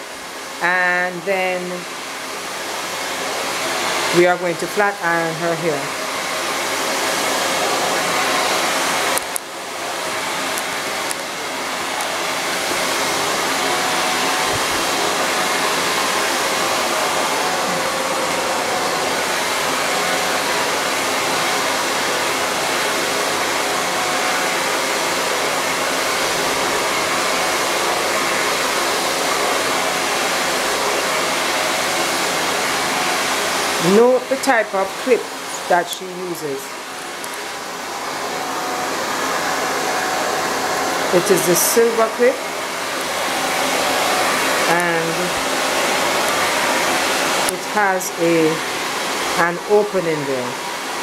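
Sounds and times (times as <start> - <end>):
hair dryer blowing: 0.0 - 51.0.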